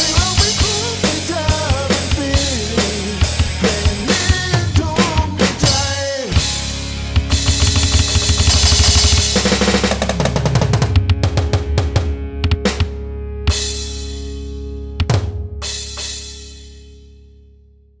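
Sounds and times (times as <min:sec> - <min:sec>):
drum hits and fills: 0:00.0 - 0:14.3, 0:15.0 - 0:16.8
rock song: 0:00.0 - 0:17.0.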